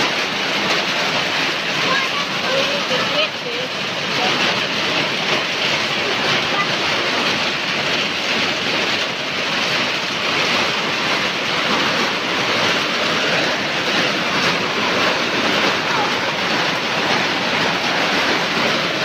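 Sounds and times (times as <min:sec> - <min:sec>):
heavy rain on concrete: 0:00.0 - 0:19.0.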